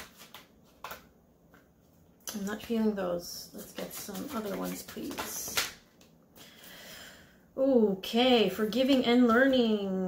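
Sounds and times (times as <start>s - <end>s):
cards rustling: 0.0s - 1.6s, 3.5s - 6.2s
cards tapping and slapping: 0.0s - 1.7s, 3.6s - 6.2s.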